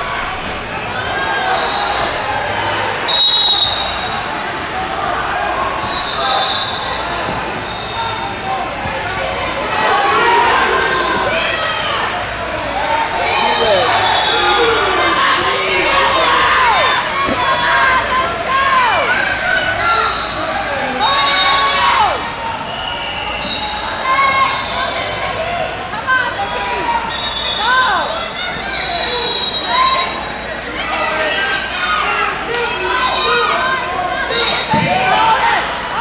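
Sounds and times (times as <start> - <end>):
babble of many voices echoing: 0.0 - 36.0
high whistle tones: 3.1 - 4.2, 5.8 - 7.0, 22.6 - 24.8, 27.0 - 27.9, 28.7 - 30.4.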